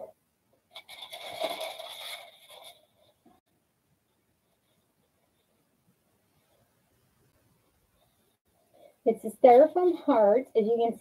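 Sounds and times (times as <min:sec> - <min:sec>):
foam roses rustling and crackling: 0:00.7 - 0:03.5.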